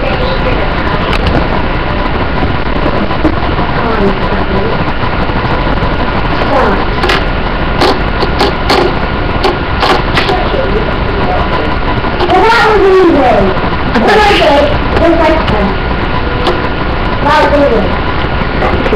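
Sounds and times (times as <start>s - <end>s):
faint voices: 0.0s - 18.9s
steady hiss and rumble: 0.0s - 18.9s.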